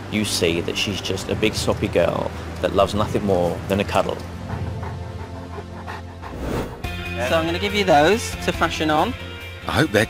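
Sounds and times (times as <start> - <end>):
soft background music: 0.0 - 10.0
dog panting: 4.2 - 6.6.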